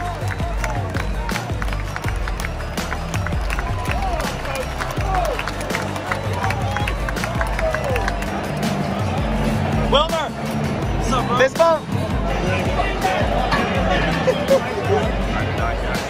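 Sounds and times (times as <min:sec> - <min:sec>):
close handclaps: 0:00.0 - 0:08.8
crowd cheering: 0:00.0 - 0:16.0
music with heavy bass: 0:00.0 - 0:16.0.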